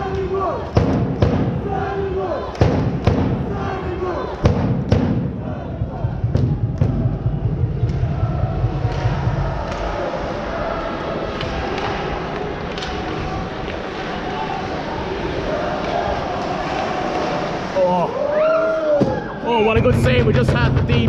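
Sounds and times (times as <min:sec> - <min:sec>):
crowd murmuring: 0:00.0 - 0:21.0
low rumble: 0:04.8 - 0:14.1.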